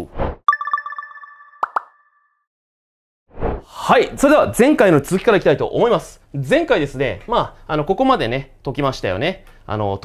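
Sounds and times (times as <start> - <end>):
ringing chime tones: 0.5 - 2.4.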